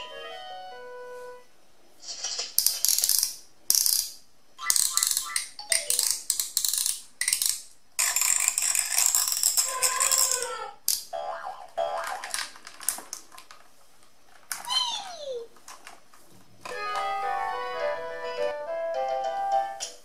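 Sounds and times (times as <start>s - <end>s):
plastic ratcheting clicks: 2.6s - 11.0s.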